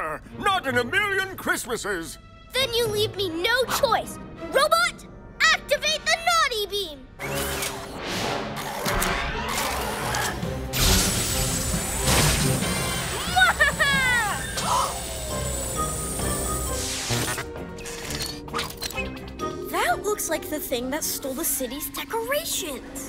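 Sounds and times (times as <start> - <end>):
background music: 0.0 - 23.0
sci-fi ray-beam hum: 10.8 - 17.0.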